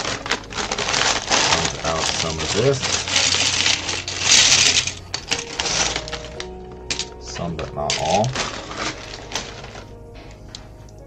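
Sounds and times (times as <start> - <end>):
plastic bricks clicking: 0.0 - 9.9
plastic bricks pouring into tray: 0.0 - 9.9
background music: 0.0 - 11.0.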